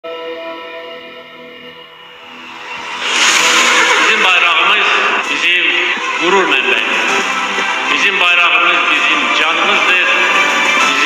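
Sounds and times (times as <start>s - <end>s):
loud rushing noise: 1.9s - 7.2s.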